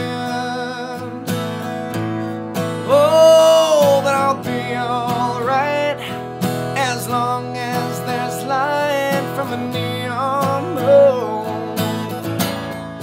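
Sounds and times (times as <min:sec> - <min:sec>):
man singing: 0:00.0 - 0:02.0, 0:02.6 - 0:12.3
acoustic guitar strumming: 0:00.0 - 0:13.0.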